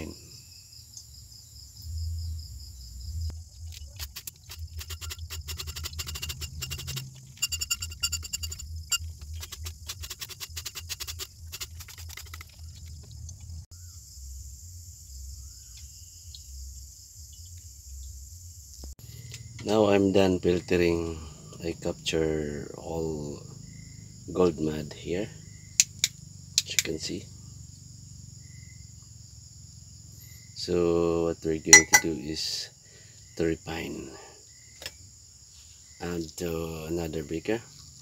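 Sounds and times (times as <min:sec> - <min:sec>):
crickets chirping: 0:00.0 - 0:38.0
rapid clicks: 0:04.0 - 0:13.5.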